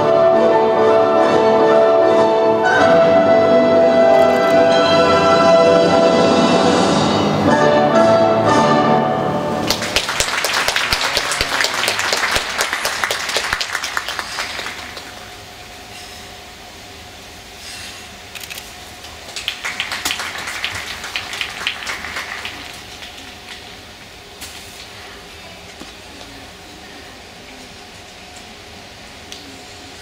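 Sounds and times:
orchestral music: 0.0 - 9.9
audience applause: 9.6 - 15.4, 19.2 - 24.0.

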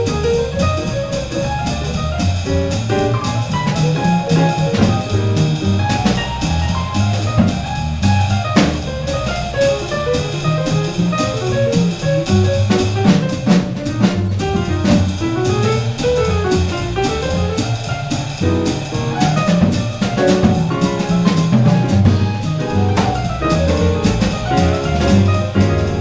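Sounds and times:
double bass: 0.0 - 26.0
drum kit with cymbals: 0.0 - 26.0
jazz melodic line: 0.0 - 26.0.

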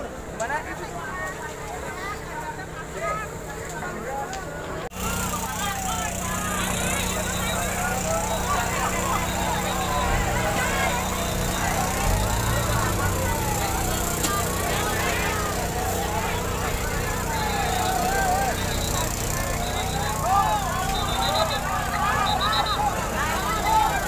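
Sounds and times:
crowd chatter: 0.0 - 24.0
engine hum: 4.8 - 24.0
fire engine siren wailing: 5.0 - 24.0.

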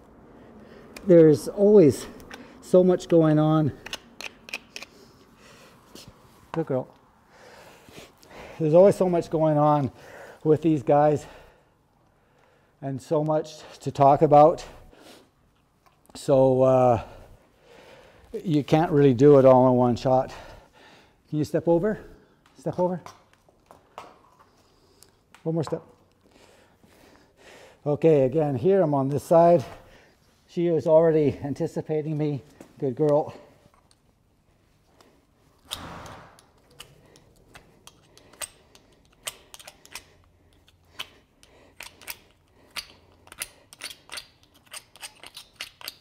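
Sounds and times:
hoof pick scraping a hoof: 41.8 - 46.0.

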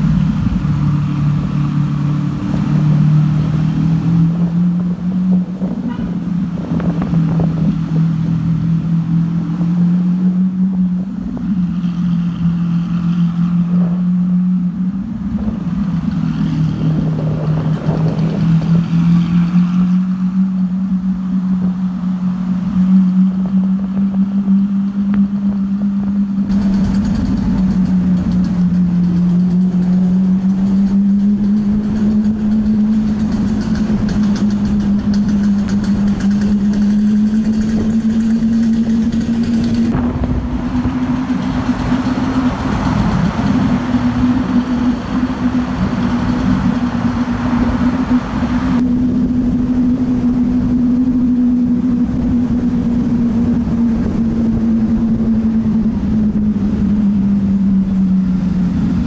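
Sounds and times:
sports car engine droning: 0.0 - 59.0.

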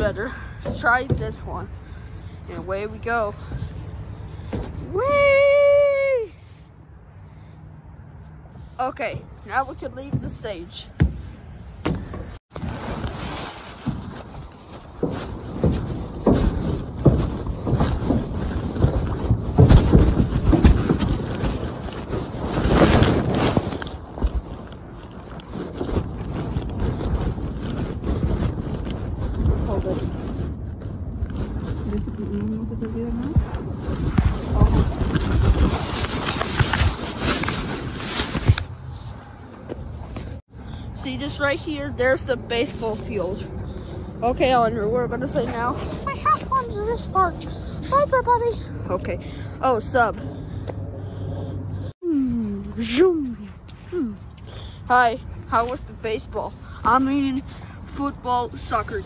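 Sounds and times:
phone microphone rubbing and bumping: 0.0 - 5.3, 8.4 - 50.1.

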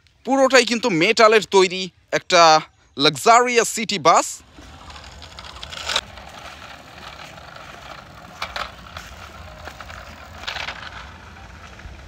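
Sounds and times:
toy wheels rolling on concrete: 4.2 - 12.0.

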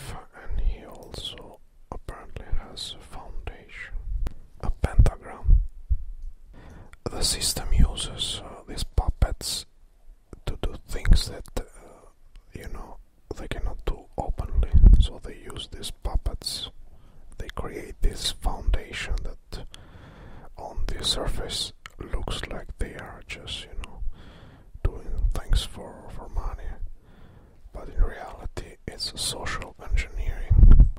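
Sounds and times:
person whispering: 0.0 - 5.6, 6.6 - 9.7, 10.4 - 19.8, 20.5 - 24.0, 24.8 - 26.9, 27.7 - 30.7.

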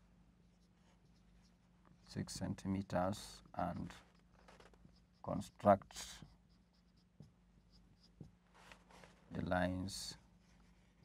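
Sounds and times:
marker pen writing on whiteboard: 0.4 - 2.1, 3.3 - 9.4.

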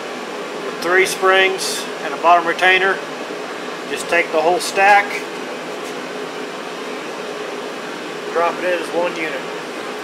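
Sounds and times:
ventilation fan running: 0.0 - 10.0.

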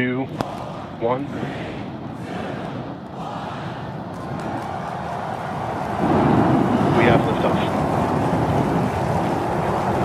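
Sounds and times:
rocket engines roaring: 0.0 - 10.0.

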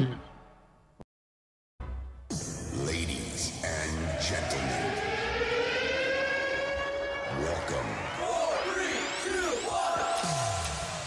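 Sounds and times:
siren-like electronic tone: 3.5 - 11.0.

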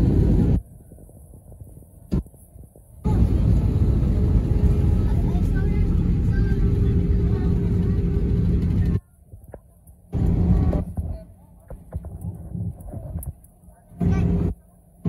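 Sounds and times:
airliner cabin rumble: 0.0 - 15.0.

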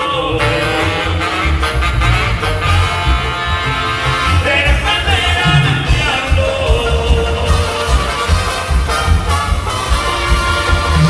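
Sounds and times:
live band music with bass beat: 0.0 - 11.0.

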